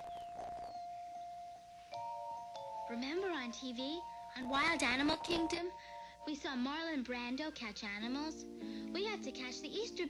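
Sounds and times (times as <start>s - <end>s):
cartoon underscore music: 0.0s - 10.0s.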